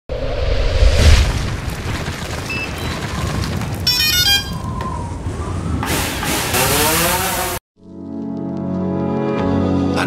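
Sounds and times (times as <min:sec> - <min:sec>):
rumbling noise: 0:00.1 - 0:06.6
music: 0:07.8 - 0:10.0.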